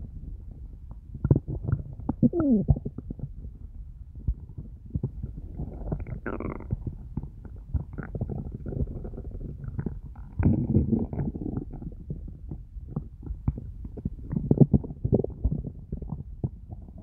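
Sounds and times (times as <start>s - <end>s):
stomach growling and gurgling: 0.0s - 17.0s.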